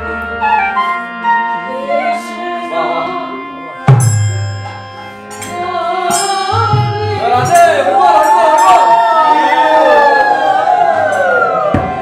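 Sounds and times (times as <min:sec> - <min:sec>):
devotional music with held notes: 0:00.0 - 0:12.0.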